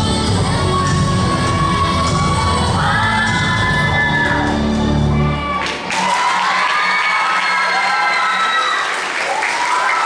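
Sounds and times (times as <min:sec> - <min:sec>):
rhythmic dance music: 0:00.0 - 0:08.1.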